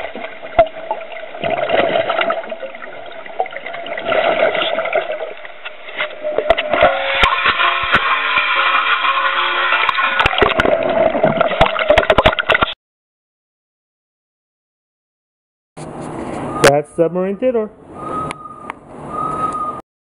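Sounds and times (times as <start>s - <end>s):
steady pitched hum: 0.0s - 11.9s
underwater rushing and bubbling: 0.0s - 12.8s.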